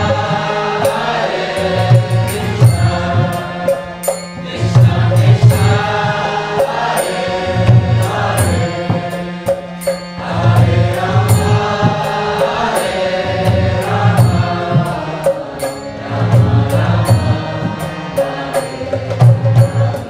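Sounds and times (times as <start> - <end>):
hand cymbals striking: 0.0 - 20.0
harmonium: 0.0 - 20.0
voices chanting: 0.0 - 20.0.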